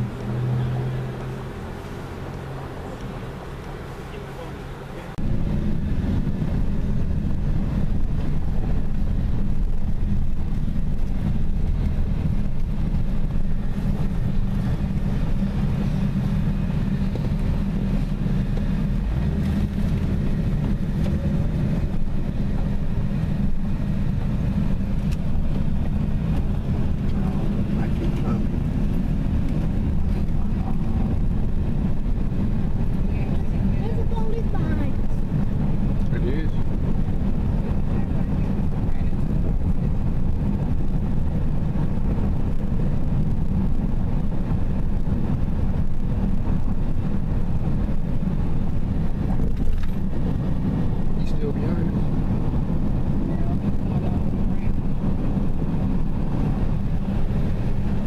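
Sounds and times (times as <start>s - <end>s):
car engine and road noise: 0.0s - 58.0s.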